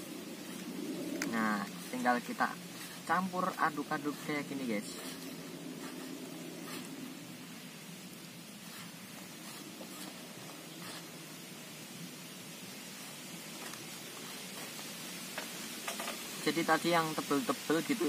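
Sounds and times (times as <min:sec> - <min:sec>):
faint background hiss: 0:00.0 - 0:18.0.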